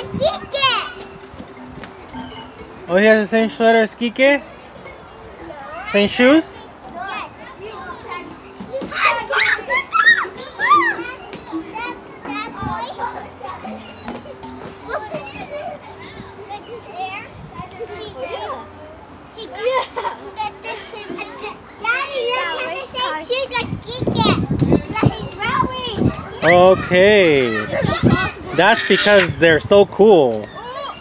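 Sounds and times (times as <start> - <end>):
children calling out and shrieking: 0.0 - 2.9, 4.4 - 31.0.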